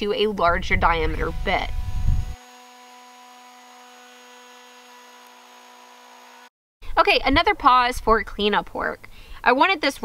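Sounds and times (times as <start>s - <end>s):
router motor whine: 1.0s - 6.5s.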